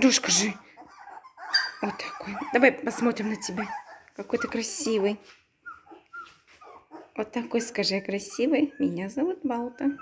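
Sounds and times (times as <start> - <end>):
puppy whimpering: 0.0 - 10.0.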